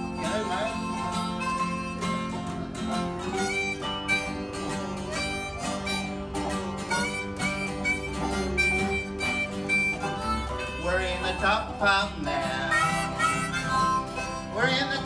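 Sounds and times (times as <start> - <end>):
harmonica lead: 0.0 - 15.0
resonator guitar: 0.0 - 15.0
strummed acoustic guitar: 0.0 - 15.0
person singing: 10.8 - 13.7.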